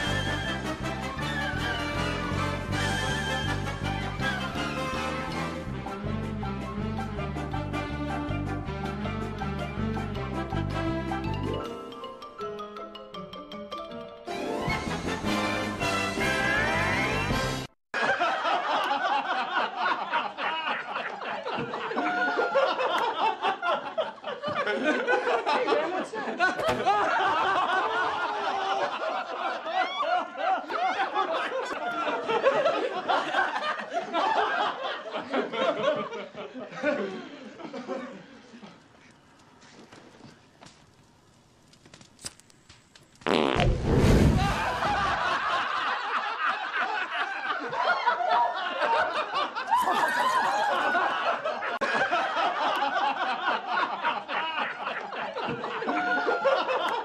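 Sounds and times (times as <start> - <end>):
crowd laughing: 0.0 - 6.1, 6.7 - 11.7, 18.0 - 39.9, 44.1 - 57.0
fart sound effect: 43.2 - 45.2.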